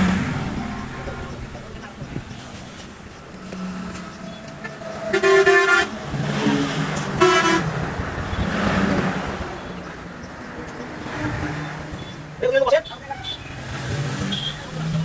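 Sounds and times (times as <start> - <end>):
vehicle horn: 0.0 - 1.7, 3.5 - 7.8, 14.2 - 14.7
road traffic noise: 0.0 - 15.0.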